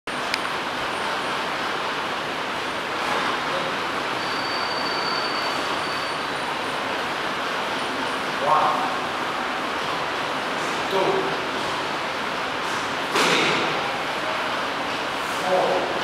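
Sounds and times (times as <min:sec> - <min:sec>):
steady rushing room noise: 0:00.1 - 0:16.0.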